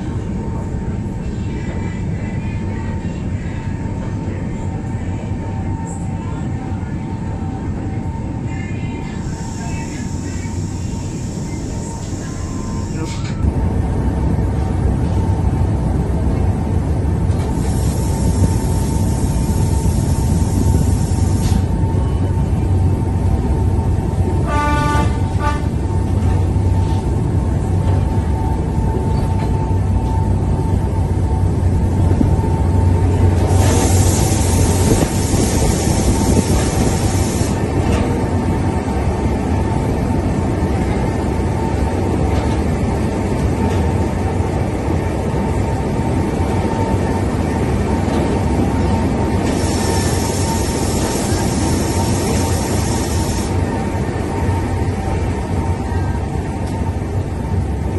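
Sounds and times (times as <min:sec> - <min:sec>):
train rumble and whine: 0:00.0 - 0:57.9
loud hiss: 0:33.5 - 0:37.6.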